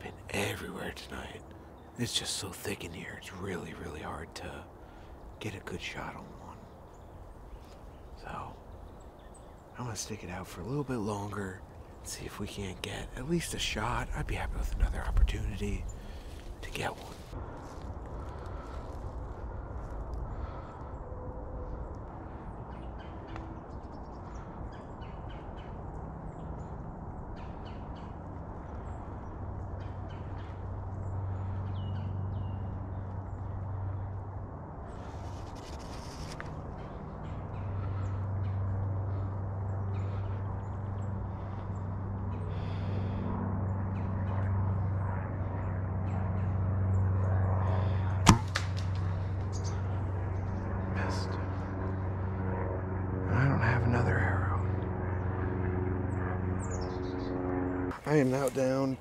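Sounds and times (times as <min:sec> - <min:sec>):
low steady drone: 0:00.0 - 0:59.0
leaves and brush rustling: 0:11.2 - 0:20.6, 0:34.8 - 0:39.2, 0:47.3 - 0:51.8, 0:57.9 - 0:59.0
bow shot snap: 0:48.2 - 0:49.1.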